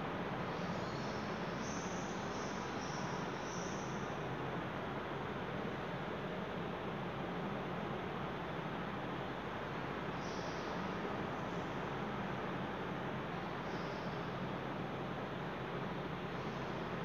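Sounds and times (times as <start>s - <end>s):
background hiss: 0.0s - 17.0s.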